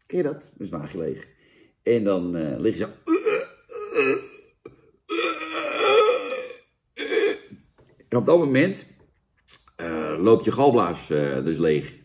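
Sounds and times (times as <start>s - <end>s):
man imitating retching: 3.0s - 7.6s, 9.5s - 10.3s.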